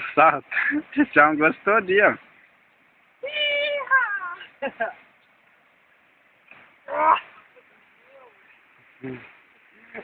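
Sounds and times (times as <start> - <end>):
person yelling: 3.2 - 4.5, 6.9 - 7.4
short vocal bursts: 9.0 - 9.4.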